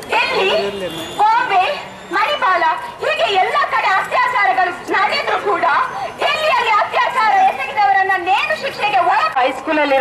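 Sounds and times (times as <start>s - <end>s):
woman speaking into a microphone: 0.0s - 10.0s.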